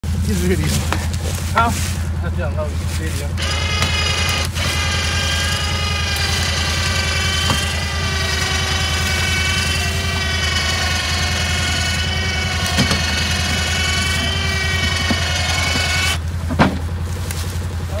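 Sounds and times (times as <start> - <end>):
steady low hum: 0.0 - 18.0
electric winch motor whine: 3.3 - 16.4.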